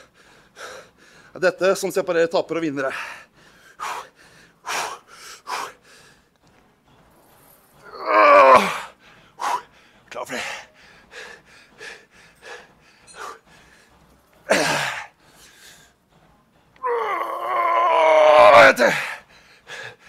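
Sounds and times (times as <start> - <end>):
man breathing hard: 0.0 - 1.4, 2.8 - 6.4, 8.6 - 16.0, 18.8 - 20.0.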